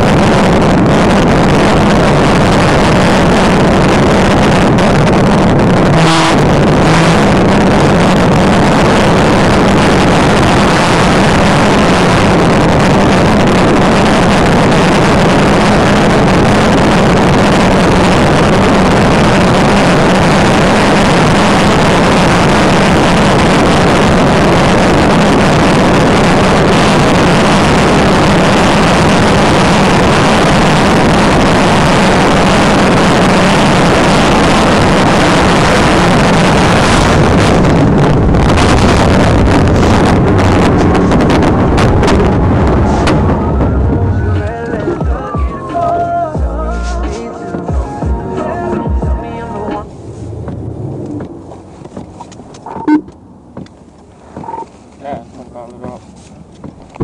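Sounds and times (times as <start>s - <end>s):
car engine drone: 0.0s - 57.0s
road and wind noise: 0.0s - 57.0s.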